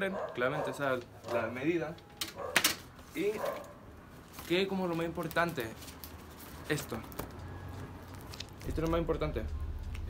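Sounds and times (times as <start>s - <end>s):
plastic film crackling: 0.9s - 10.0s.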